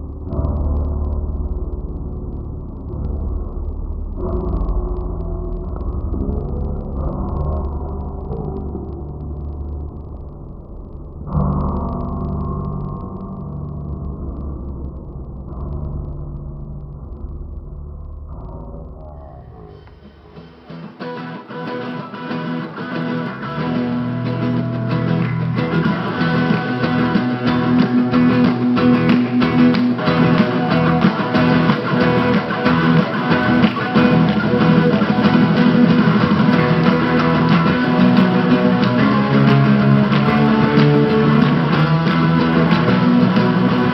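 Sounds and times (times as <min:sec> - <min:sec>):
guitar band music: 0:19.8 - 0:43.9.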